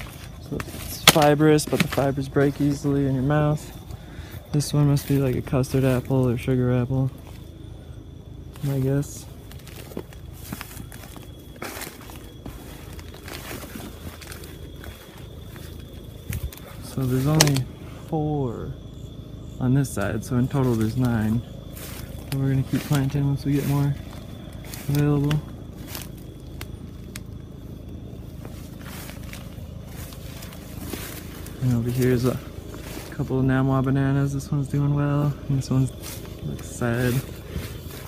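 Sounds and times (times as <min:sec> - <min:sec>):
footsteps through weeds and leaves: 0:00.0 - 0:17.7, 0:19.9 - 0:38.0
leaf rustling: 0:00.0 - 0:18.1, 0:18.8 - 0:38.0
low steady rumble: 0:00.0 - 0:38.0.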